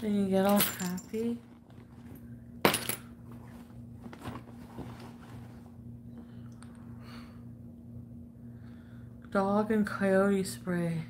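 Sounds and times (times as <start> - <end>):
objects clinking in a handbag: 0.4 - 3.0.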